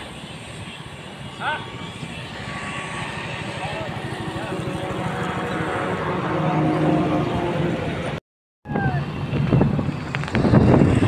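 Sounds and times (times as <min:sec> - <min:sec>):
vehicles passing on road: 0:00.0 - 0:11.0.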